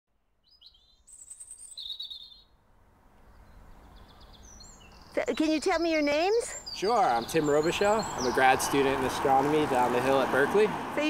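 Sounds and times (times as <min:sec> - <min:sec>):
small birds chirping: 0:00.4 - 0:02.6, 0:03.2 - 0:10.3.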